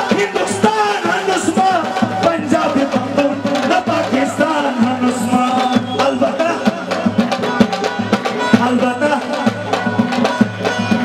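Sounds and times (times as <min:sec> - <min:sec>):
man singing folk song: 0:00.0 - 0:07.7
steady drum rhythm: 0:00.0 - 0:11.0.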